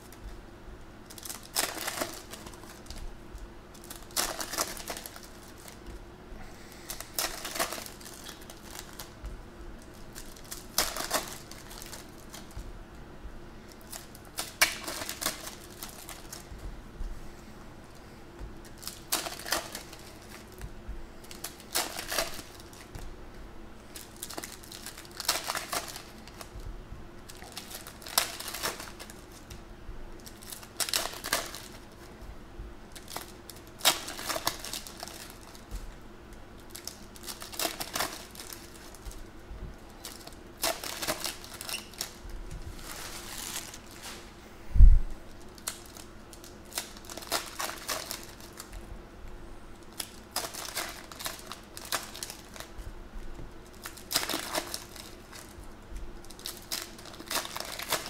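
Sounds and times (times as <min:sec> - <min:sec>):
foil wrappers crinkling and tearing: 0:01.0 - 0:03.1, 0:03.7 - 0:12.7, 0:13.6 - 0:16.7, 0:17.9 - 0:23.1, 0:23.8 - 0:32.2, 0:32.9 - 0:44.4, 0:45.2 - 0:48.9, 0:49.8 - 0:58.0.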